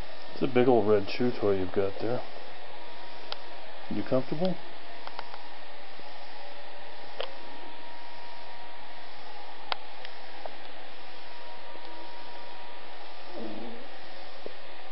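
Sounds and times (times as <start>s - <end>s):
steady hiss: 0.0s - 14.9s.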